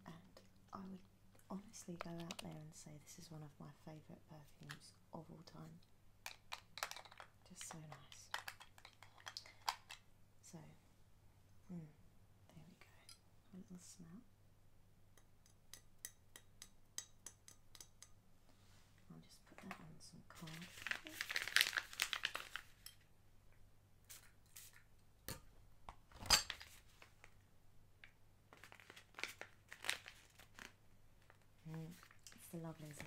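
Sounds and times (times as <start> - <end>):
crinkly rustling: 20.3 - 22.8, 28.5 - 33.0.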